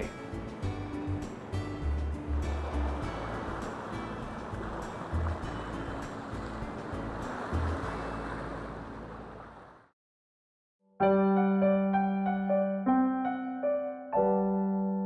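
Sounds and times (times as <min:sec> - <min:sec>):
soft background music: 0:00.0 - 0:09.6
river water rushing over rocks: 0:00.1 - 0:09.7.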